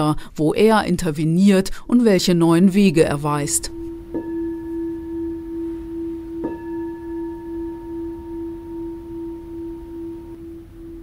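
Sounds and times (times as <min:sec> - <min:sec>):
singing bowl ringing: 0:03.6 - 0:11.0.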